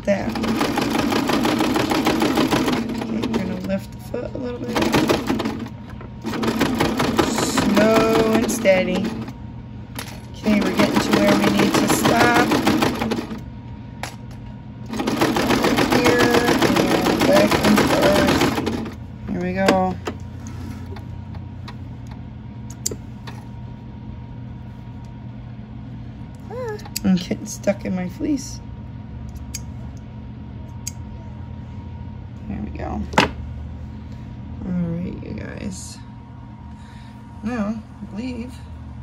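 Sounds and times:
sewing machine stitching: 0.0 - 3.7, 4.6 - 9.3, 10.4 - 13.4, 14.9 - 19.0.

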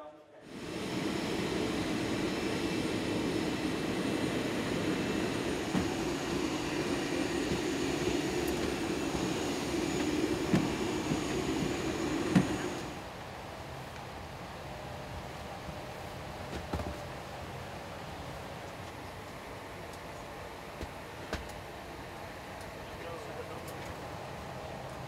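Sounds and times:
jet airliner engine rumble: 0.5 - 25.0.

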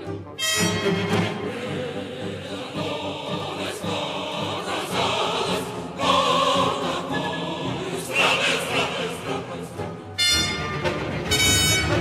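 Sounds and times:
orchestra playing: 0.0 - 2.2, 9.8 - 12.0
opera chorus singing: 0.0 - 11.4.

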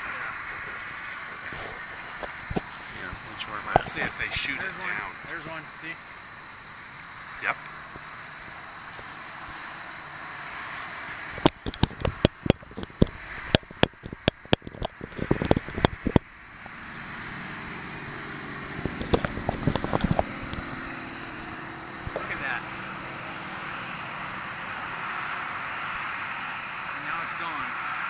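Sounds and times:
sharp clicks and crackles: 0.0 - 5.0, 11.3 - 16.8, 18.8 - 20.8, 22.0 - 22.5
steady high-pitched whine: 0.0 - 28.0.

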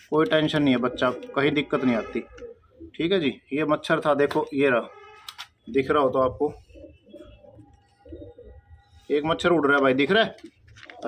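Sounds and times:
pigeon cooing: 0.5 - 3.4, 6.0 - 9.6.

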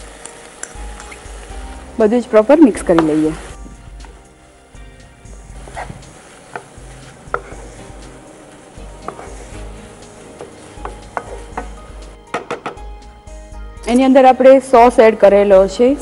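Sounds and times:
wooden spatula stirring noodles: 5.6 - 12.0
spatula knocking against pan: 10.4 - 12.8.

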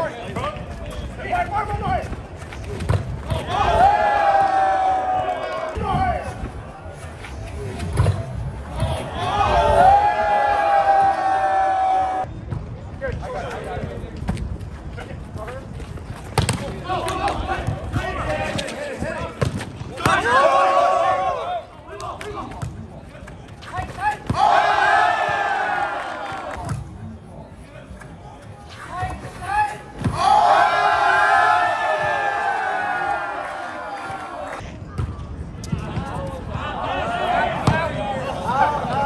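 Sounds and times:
people shouting and yelling: 2.8 - 12.3, 16.4 - 22.8, 23.6 - 26.8, 28.6 - 39.0.

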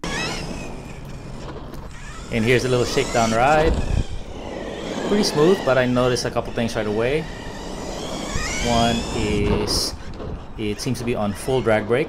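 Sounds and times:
electric motor whine: 0.0 - 12.0
tyre and outdoor noise: 0.0 - 12.0.

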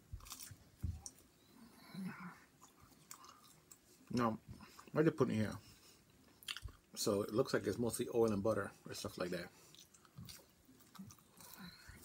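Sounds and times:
person chewing: 0.0 - 1.3, 2.5 - 5.0, 6.0 - 6.9, 9.6 - 12.0.

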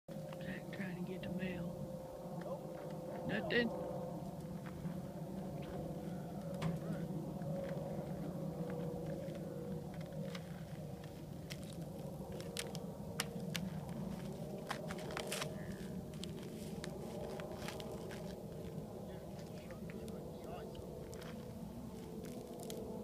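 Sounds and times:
low background hum: 0.1 - 23.0
shoes crunching on ice: 14.1 - 18.7.

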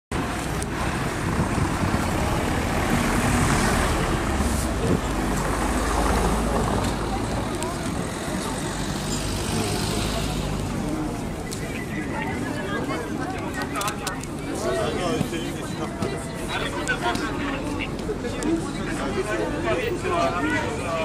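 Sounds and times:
passing vehicles rumbling: 0.1 - 21.0
indistinct voices: 0.2 - 21.0.

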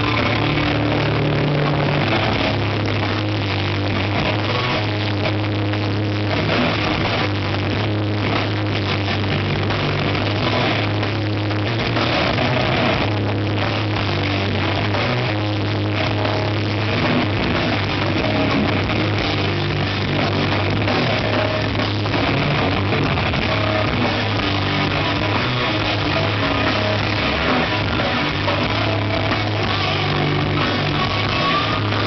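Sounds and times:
death metal band playing live: 0.0 - 32.0.

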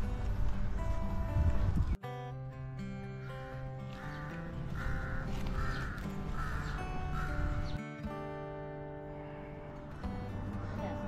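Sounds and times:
background music with held notes: 0.0 - 11.0
bird rasping calls: 3.2 - 7.8.

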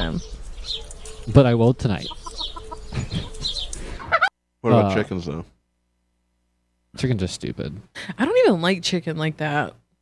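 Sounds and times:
poultry clucking: 0.8 - 4.3
person laughing: 2.9 - 4.3.

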